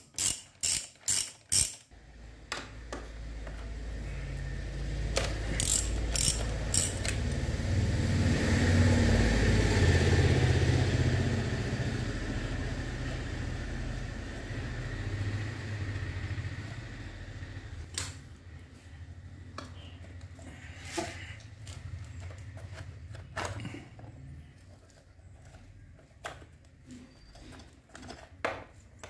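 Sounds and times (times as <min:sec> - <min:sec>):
ratchet wrench clicks: 0:00.0 - 0:01.9, 0:05.6 - 0:07.2.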